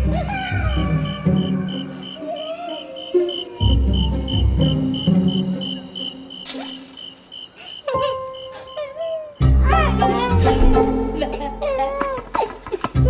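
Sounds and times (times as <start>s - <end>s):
cricket chirping: 0.3s - 9.6s.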